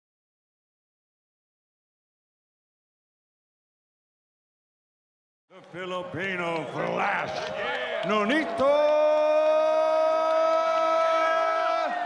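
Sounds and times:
crowd voices: 5.5 - 12.0
announcer's long held shout: 8.5 - 12.0.

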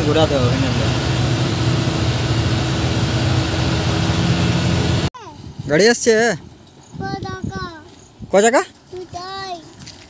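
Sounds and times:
diesel engine low drone: 0.0 - 5.1.

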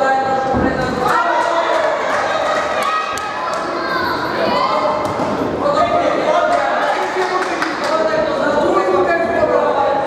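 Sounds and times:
voices calling out in a hall: 0.0 - 10.0.

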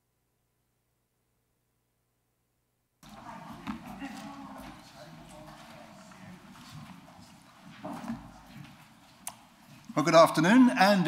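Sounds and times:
footsteps: 3.0 - 10.3
murmur of voices: 3.0 - 10.5.

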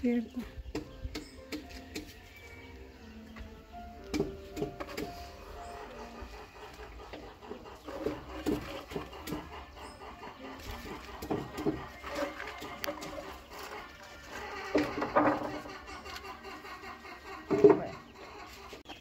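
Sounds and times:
faint music with held notes: 0.0 - 19.0
firewood knocking: 0.7 - 2.2, 4.0 - 5.2, 11.2 - 13.3.

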